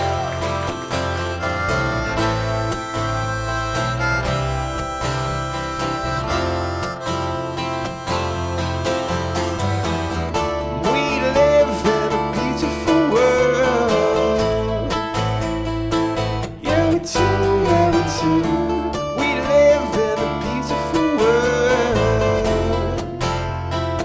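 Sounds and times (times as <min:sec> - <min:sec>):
harmonica melody: 0:00.0 - 0:23.5
strummed acoustic guitar: 0:00.0 - 0:24.0.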